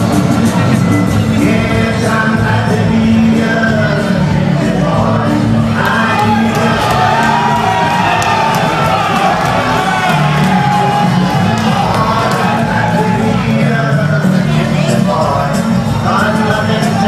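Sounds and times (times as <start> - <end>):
loud music with sung vocal: 0.0 - 17.0
crowd cheering and shouting: 3.8 - 17.0.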